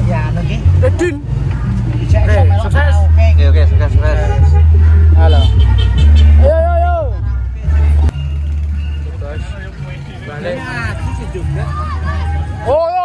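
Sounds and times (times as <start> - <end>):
men talking and calling out: 0.0 - 13.0
man shouting: 6.4 - 7.2.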